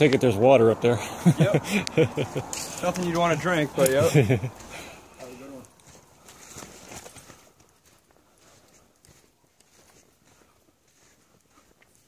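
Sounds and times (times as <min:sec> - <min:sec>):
person laughing: 0:00.9 - 0:02.8, 0:03.8 - 0:04.8
footsteps on sandy dirt: 0:02.1 - 0:12.0.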